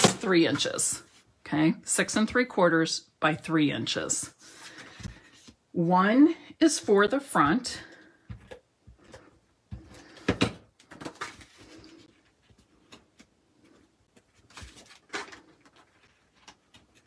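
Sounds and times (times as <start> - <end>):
paper rustling: 13.6 - 17.0.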